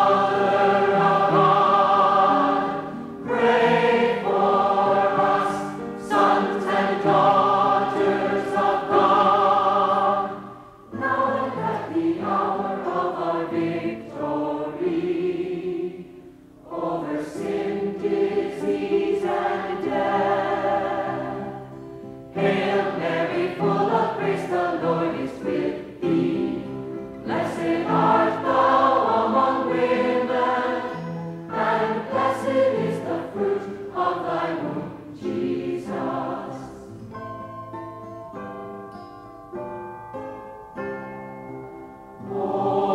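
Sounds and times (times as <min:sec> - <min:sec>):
congregation singing: 0:00.0 - 0:37.1, 0:42.2 - 0:42.9.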